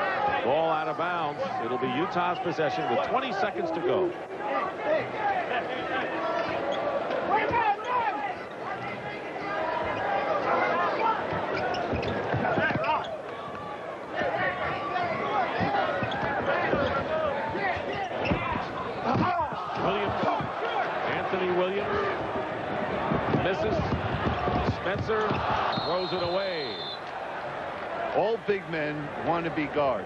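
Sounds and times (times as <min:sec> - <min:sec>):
crowd voices: 0:00.0 - 0:30.0.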